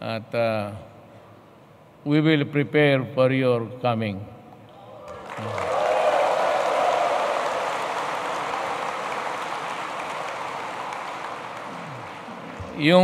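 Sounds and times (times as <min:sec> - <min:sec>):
large audience applauding: 0:05.1 - 0:13.0.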